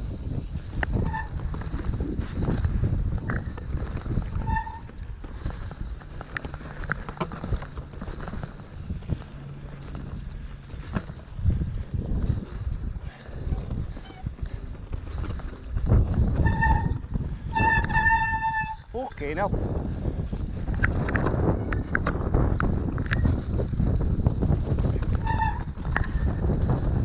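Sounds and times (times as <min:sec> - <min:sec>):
bike tyre rumble: 0:00.0 - 0:27.0
wind on microphone: 0:00.0 - 0:27.0
bike clattering over stones: 0:00.3 - 0:18.7
short high squeals: 0:16.4 - 0:18.9.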